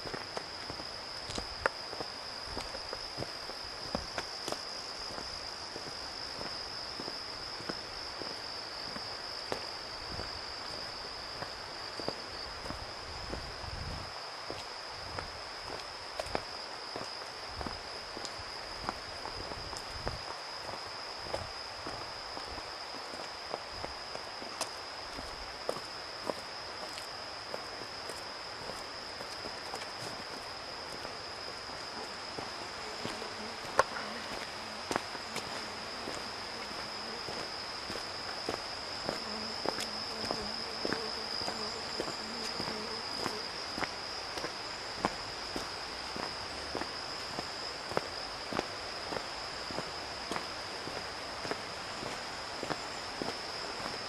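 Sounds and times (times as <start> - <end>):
footsteps on stone path: 0.0 - 54.0
insects chirring: 0.0 - 54.0.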